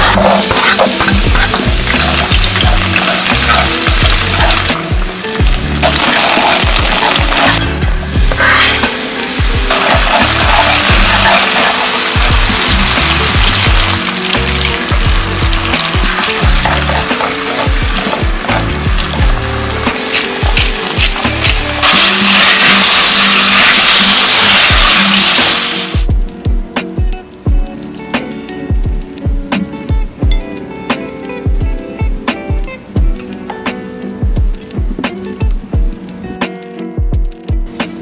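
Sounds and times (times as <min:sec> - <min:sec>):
garlic sizzling in oil: 0:00.0 - 0:26.0
background music: 0:00.0 - 0:38.0.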